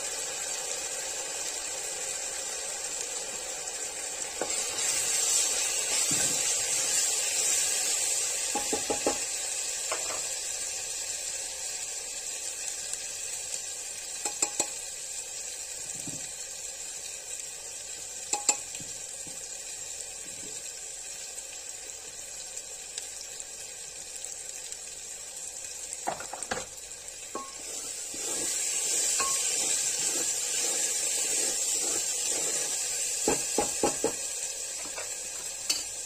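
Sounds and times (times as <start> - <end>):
onions sizzling in hot oil: 0.0 - 36.0
utensil tapping a pot: 8.5 - 9.2, 14.2 - 14.8, 18.3 - 18.8, 33.2 - 34.2.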